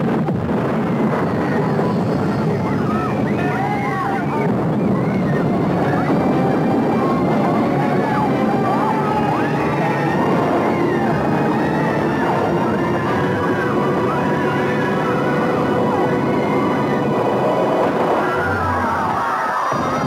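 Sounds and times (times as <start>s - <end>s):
roar of explosions and fire: 0.0s - 20.0s
crowd screaming in panic: 0.5s - 20.0s.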